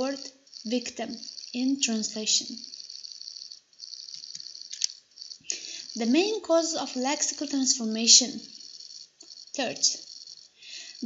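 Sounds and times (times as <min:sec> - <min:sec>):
high hiss with fluttering texture: 0:00.0 - 0:11.0.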